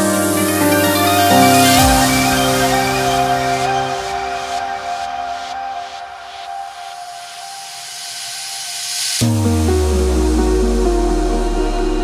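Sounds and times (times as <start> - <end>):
held synth tone: 0.0 - 6.9
white-noise sweep rising: 0.0 - 12.0.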